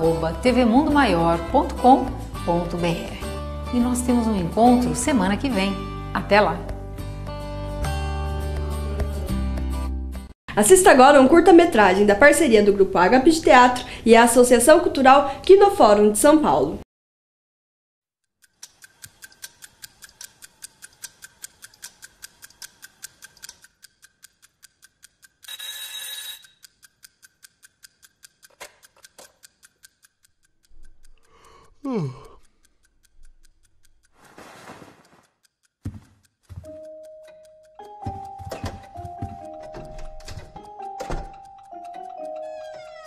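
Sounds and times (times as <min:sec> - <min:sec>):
mechanical clock ticking: 0:18.3 - 0:34.3, 0:35.0 - 0:43.0
alarm clock ringing: 0:25.4 - 0:26.8, 0:36.6 - 0:43.0.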